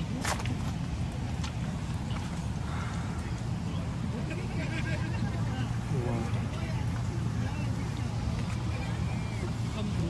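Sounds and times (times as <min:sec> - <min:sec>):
distant indistinct voices: 0:00.0 - 0:10.0.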